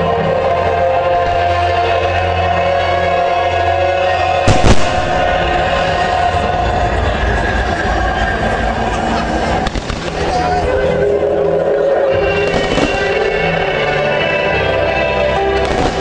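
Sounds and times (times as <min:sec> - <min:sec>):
music playing: 0:00.0 - 0:16.0
firework bangs: 0:04.4 - 0:07.1, 0:09.5 - 0:10.7, 0:12.3 - 0:13.7, 0:15.6 - 0:16.0.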